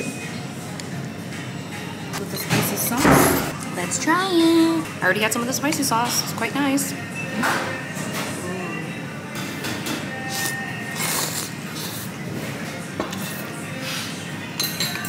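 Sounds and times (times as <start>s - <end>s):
faint background music: 0.0s - 15.0s
restaurant chatter: 0.0s - 15.0s
dishes clinking: 2.2s - 3.6s, 14.5s - 15.0s
noodles slurped: 10.3s - 12.1s.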